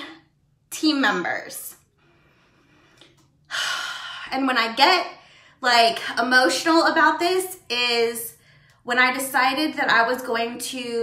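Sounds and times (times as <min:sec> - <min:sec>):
woman speaking: 0:00.0 - 0:01.8, 0:04.3 - 0:11.0.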